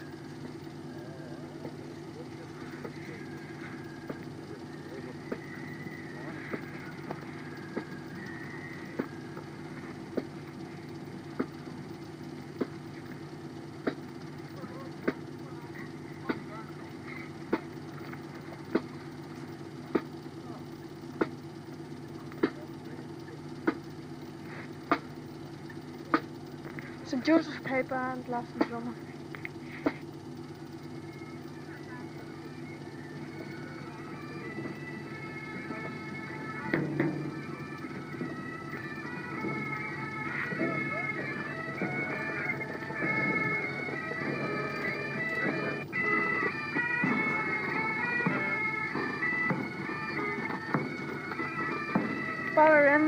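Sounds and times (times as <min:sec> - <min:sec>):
parade band playing: 0:00.0 - 0:13.4, 0:31.1 - 0:53.0
steady low hum: 0:00.0 - 0:53.0.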